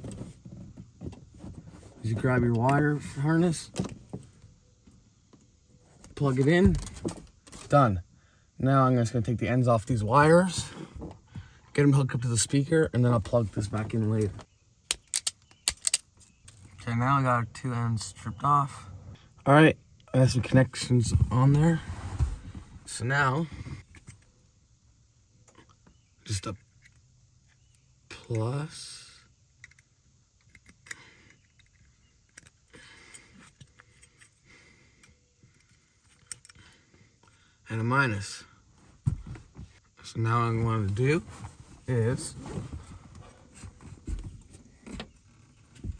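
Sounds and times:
wire stripper clicks and snips: 0:14.9 - 0:16.1
handling rustle: 0:40.8 - 0:45.9.

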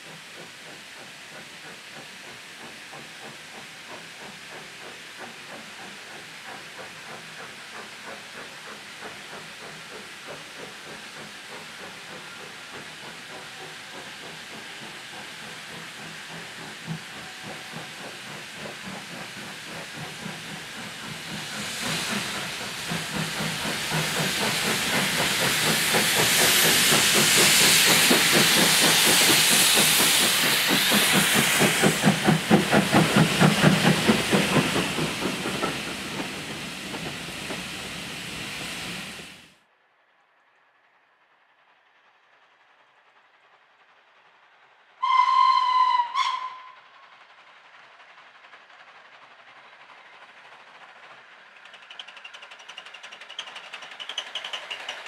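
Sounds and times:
loud steam hiss: 0:00.0 - 0:39.5
steam locomotive exhaust beats: 0:00.0 - 0:39.5, 0:42.5 - 0:55.0.

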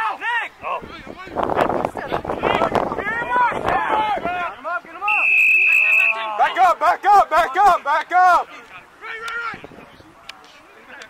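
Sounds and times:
spectators shouting: 0:03.0 - 0:09.6
referee whistle: 0:05.0 - 0:06.3.

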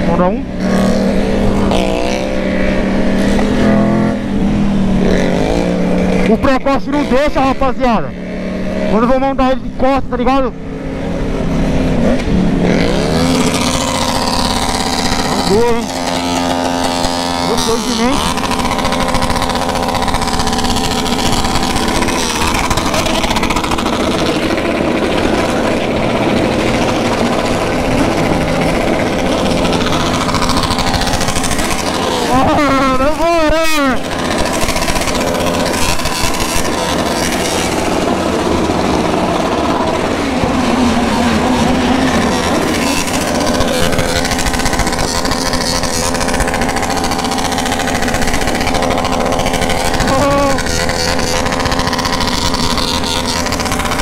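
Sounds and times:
motorcycle engines idling: 0:00.0 - 0:54.0
motorcycle throttle blips: 0:00.0 - 0:54.0.

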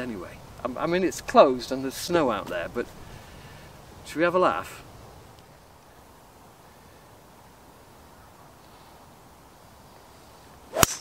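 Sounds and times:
golf ball impact crack: 0:10.7 - 0:11.0
golf club swish: 0:10.7 - 0:11.0.

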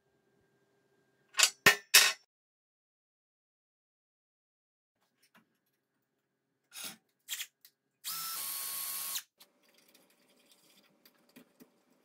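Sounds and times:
cordless drill motor whine: 0:08.1 - 0:09.3.

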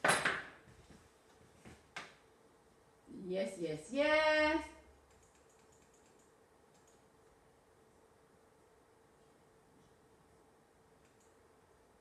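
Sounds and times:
faint steady hum: 0:00.0 - 0:12.0
computer mouse clicking: 0:05.0 - 0:07.1, 0:11.0 - 0:11.4.

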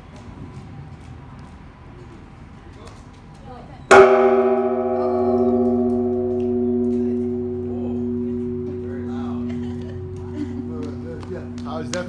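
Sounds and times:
large temple bell ringing: 0:03.9 - 0:12.0.

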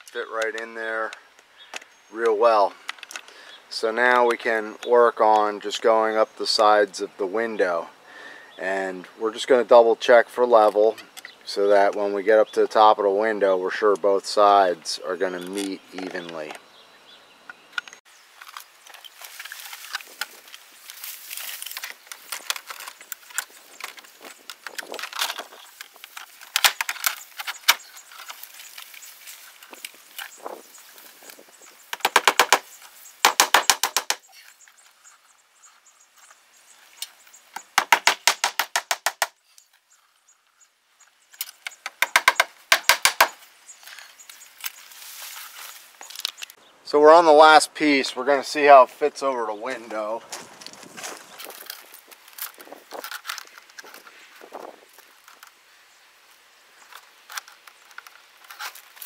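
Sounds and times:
siding panel rustling: 0:17.6 - 0:40.6, 0:41.3 - 0:46.6, 0:49.7 - 0:55.6, 0:56.8 - 0:59.0
vinyl siding rapid clicking: 0:31.9 - 0:34.3, 0:41.6 - 0:43.4.

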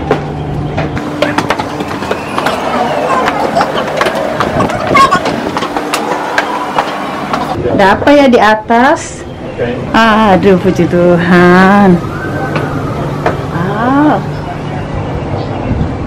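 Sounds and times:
footsteps on stone steps: 0:00.0 - 0:07.6
crowd chatter: 0:01.0 - 0:07.8.

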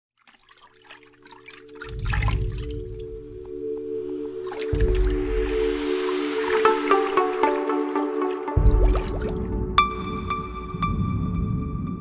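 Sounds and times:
water splashing and dripping: 0:00.2 - 0:11.7
held synth chord: 0:02.6 - 0:11.9.

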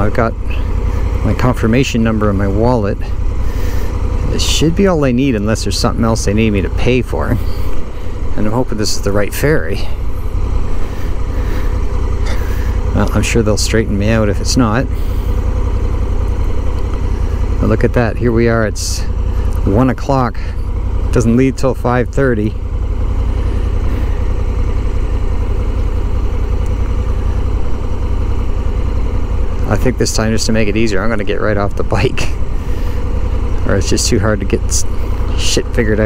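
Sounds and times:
motorcycle engine idling: 0:00.0 - 0:36.0.

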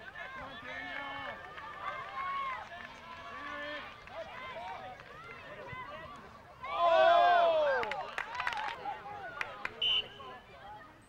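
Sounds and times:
voices shouting and calling out: 0:00.0 - 0:11.0.

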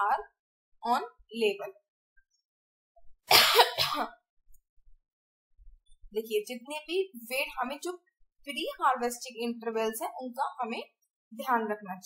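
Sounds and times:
person coughing: 0:03.3 - 0:04.2.

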